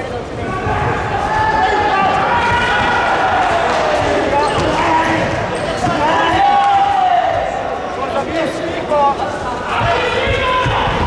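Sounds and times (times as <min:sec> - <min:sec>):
voices shouting: 0:00.4 - 0:07.7.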